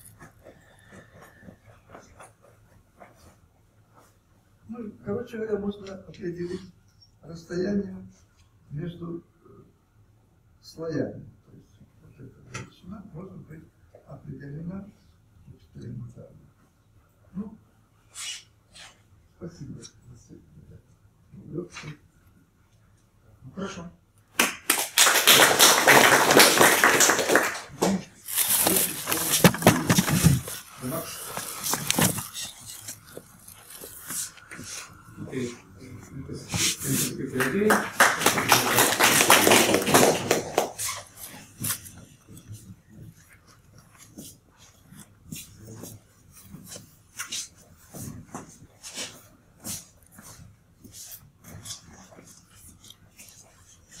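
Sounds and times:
audience applauding: 24.4 - 28.0, 37.4 - 40.8
rustling: 28.2 - 37.2.

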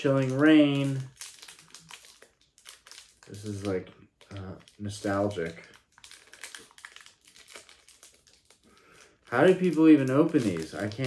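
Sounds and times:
foil wrapper crinkling: 0.0 - 11.0.

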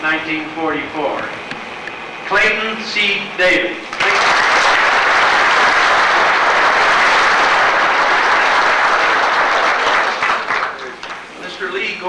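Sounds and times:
audience applauding: 3.9 - 11.3.

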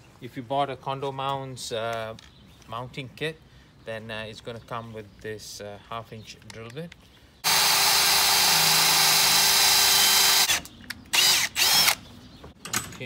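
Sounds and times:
drill boring into wood: 7.4 - 12.0.

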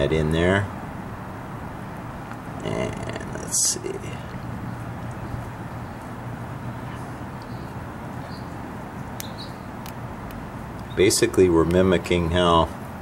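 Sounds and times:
low outdoor background hum: 0.0 - 13.0.

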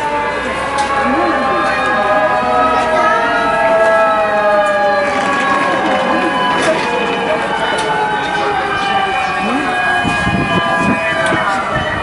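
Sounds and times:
fire engine siren wailing: 0.0 - 12.0.

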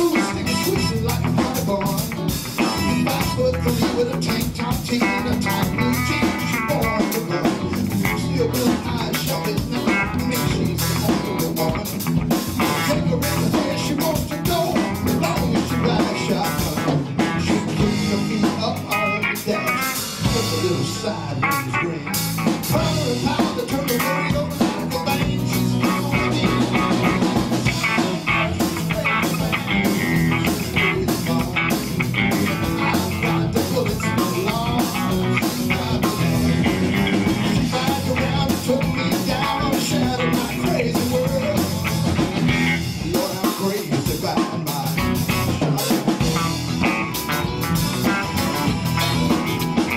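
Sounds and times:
bass guitar: 0.0 - 49.9
drum kit beat: 0.0 - 49.9
electric guitar: 0.0 - 49.9
keyboard: 0.0 - 49.9.

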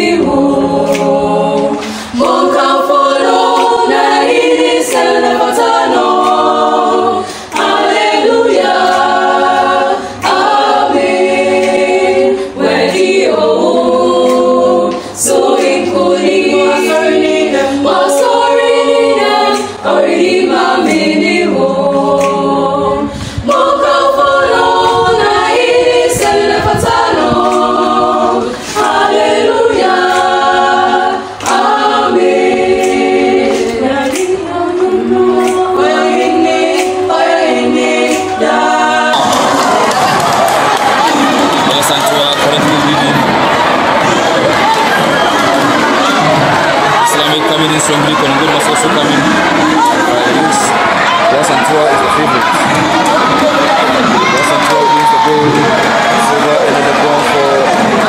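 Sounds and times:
choir singing unaccompanied: 0.0 - 58.0.

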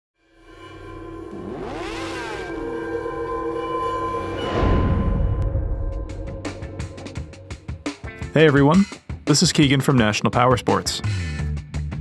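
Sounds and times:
sustained tones: 0.2 - 8.0
rising and falling pitch sweep: 0.4 - 7.6.

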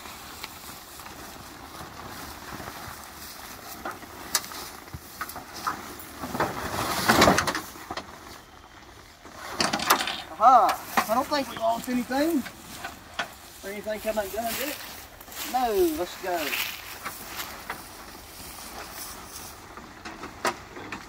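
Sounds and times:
nylon fabric rustling: 0.0 - 7.4, 10.8 - 19.6.

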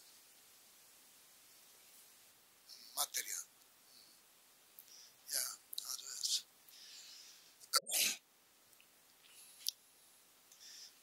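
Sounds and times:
person sneezing: 7.8 - 8.2.

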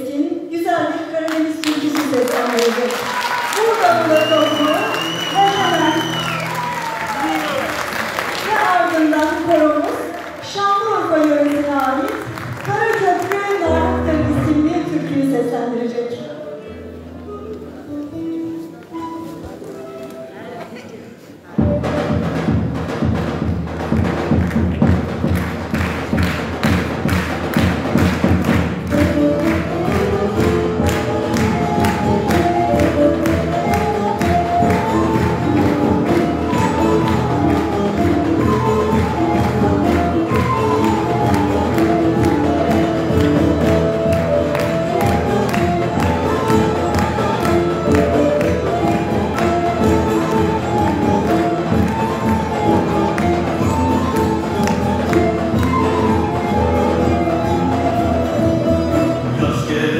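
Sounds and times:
percussion rhythm: 1.2 - 15.8, 21.4 - 59.9
folk ensemble with lutes: 13.3 - 59.9.

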